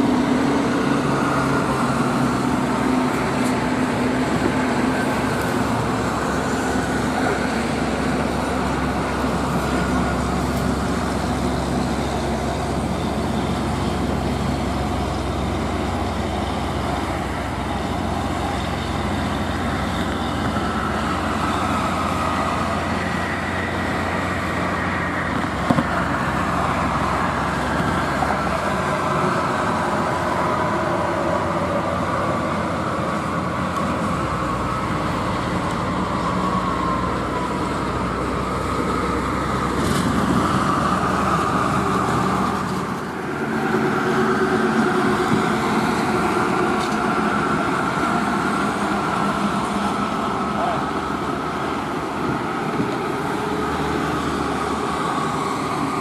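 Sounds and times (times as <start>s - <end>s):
highway traffic drone: 0.0s - 56.0s.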